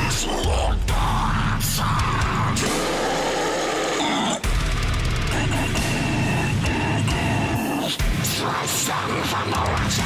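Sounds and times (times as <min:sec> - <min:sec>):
heavy metal song: 0:00.0 - 0:10.0.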